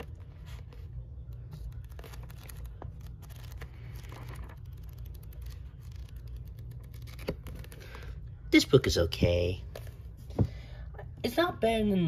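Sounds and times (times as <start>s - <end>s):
book pages flipping: 0.0s - 8.2s.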